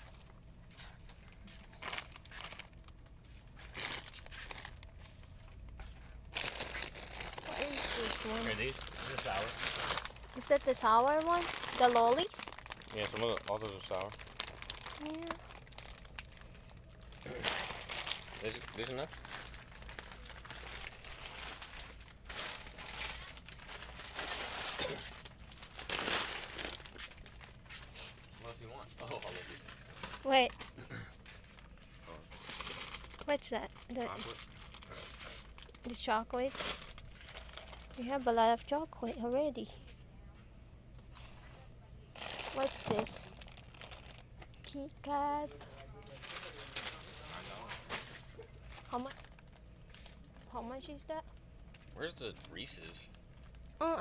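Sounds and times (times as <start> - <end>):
plastic packaging crackling: 1.6 - 38.7, 42.1 - 50.6
plastic bag crinkling: 1.6 - 39.0, 42.1 - 50.5.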